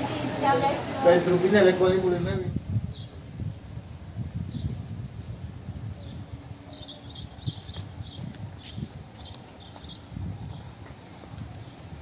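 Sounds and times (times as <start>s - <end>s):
small birds chirping: 2.9s - 3.2s, 6.0s - 10.8s.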